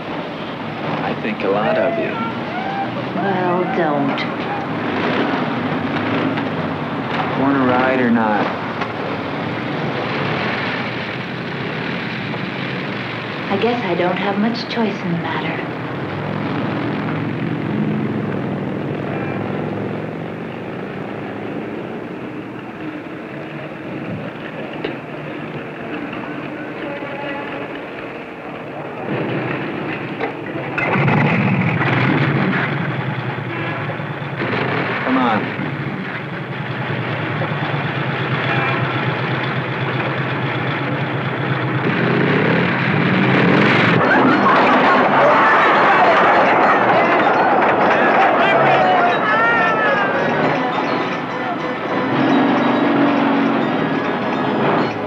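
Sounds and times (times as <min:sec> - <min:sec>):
motorcycle engines running: 0:00.0 - 0:55.0
motorcycle engine revving: 0:04.4 - 0:13.2, 0:29.0 - 0:45.2.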